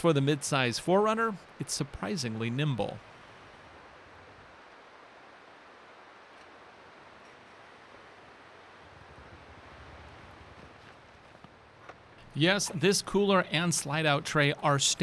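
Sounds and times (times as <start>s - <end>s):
faint hiss: 0.0s - 15.0s.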